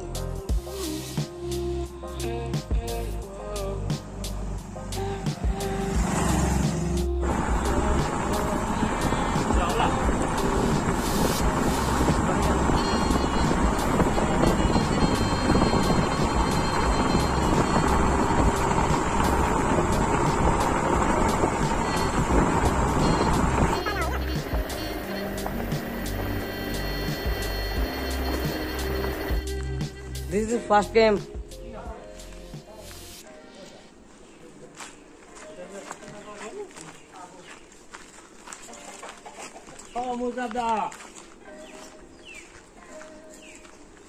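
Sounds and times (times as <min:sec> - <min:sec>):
background music: 0:00.0 - 0:34.2
motorcycle engine running: 0:04.6 - 0:30.2
wind on microphone: 0:06.0 - 0:23.8.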